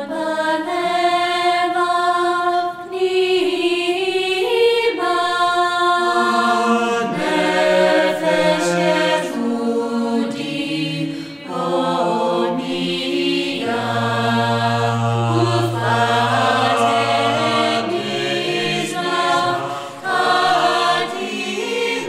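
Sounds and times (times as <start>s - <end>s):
choral singing: 0.0s - 22.0s.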